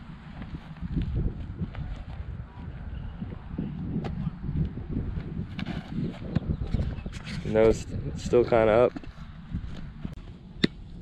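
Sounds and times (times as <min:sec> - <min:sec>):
wind on microphone: 0:00.0 - 0:10.2.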